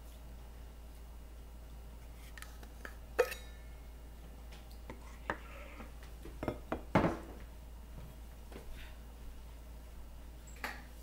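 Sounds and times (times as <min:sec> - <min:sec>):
dishes clinking and knocking: 0:06.3 - 0:07.4.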